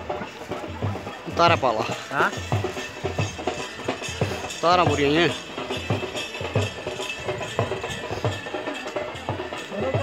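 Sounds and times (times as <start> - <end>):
drums beating steady rhythm: 0.0 - 10.0.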